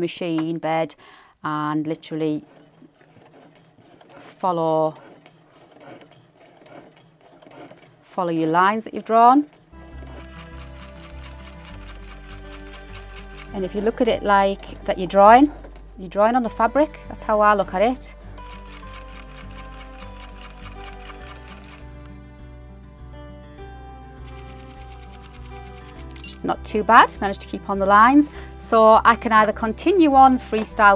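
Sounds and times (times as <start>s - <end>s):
sewing machine running: 2.2s - 14.1s, 18.4s - 22.1s, 24.3s - 26.4s
background music: 7.8s - 30.9s.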